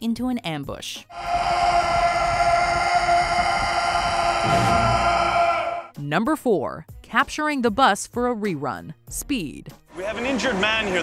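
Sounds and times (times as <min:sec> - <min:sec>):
man's war cry: 0:01.1 - 0:05.9
film score: 0:01.1 - 0:06.0.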